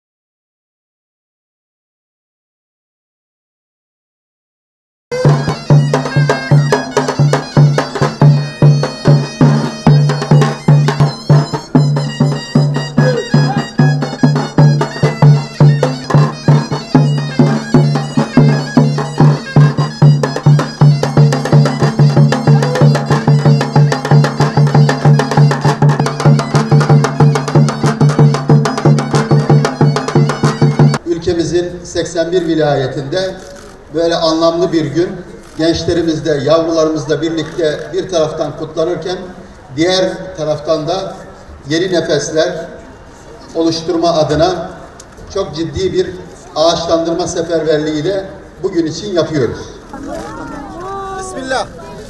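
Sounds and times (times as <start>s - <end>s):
fast drumbeat: 5.1s - 31.0s
reedy wind instrument drone: 5.1s - 31.1s.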